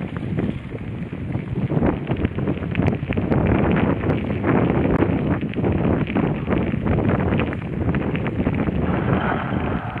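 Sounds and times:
bicycle rattling over gravel: 0.0 - 10.0
wind buffeting microphone: 0.0 - 10.0.

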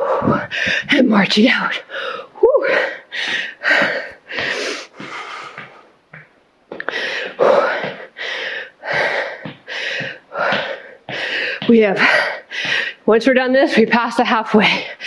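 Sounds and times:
woman breathing hard: 0.0 - 1.0, 1.8 - 5.9, 6.7 - 13.1.

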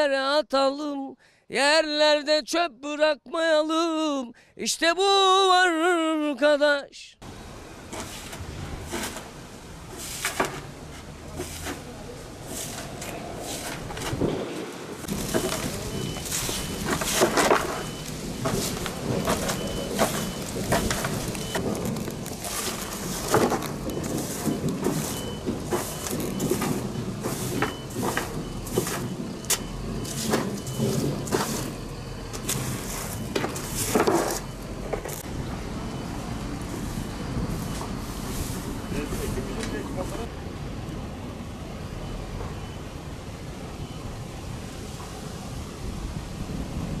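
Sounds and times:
broom sweeping leaves on concrete: 7.3 - 34.5, 36.6 - 40.3.

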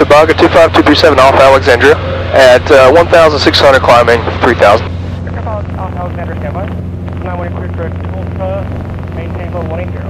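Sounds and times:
aircraft engine and propeller droning: 0.0 - 10.0
voices talking: 0.0 - 10.0.

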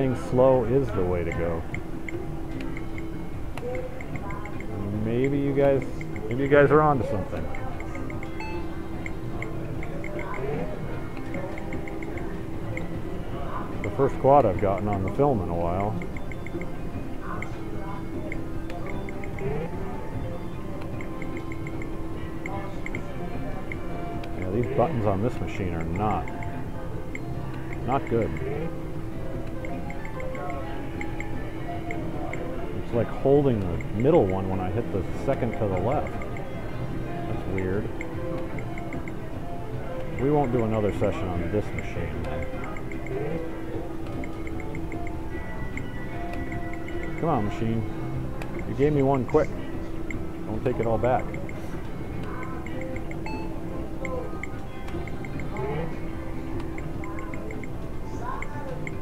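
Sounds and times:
casino ambience: 0.0 - 59.0
casino background music: 0.0 - 59.0
slot machine tunes and chimes: 4.0 - 10.3, 23.6 - 56.1
short electronic beeps: 8.0 - 9.2, 52.7 - 54.2.

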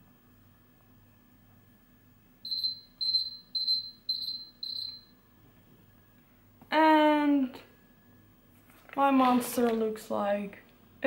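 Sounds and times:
timer alarm beeping: 2.4 - 5.2.

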